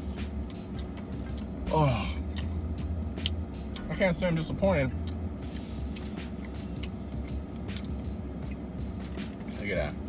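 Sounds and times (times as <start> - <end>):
car cabin hum: 0.0 - 10.0
person chewing food: 0.3 - 3.9, 5.0 - 9.5.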